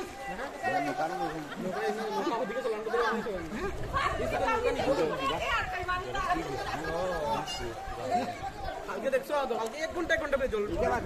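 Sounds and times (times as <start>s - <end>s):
people talking and chattering: 0.0s - 11.0s.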